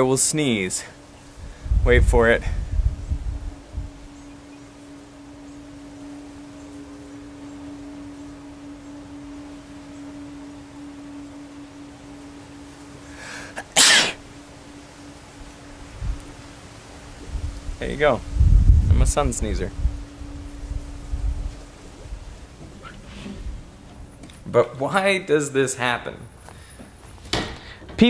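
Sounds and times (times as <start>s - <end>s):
man sneezing: 13.8s - 14.2s.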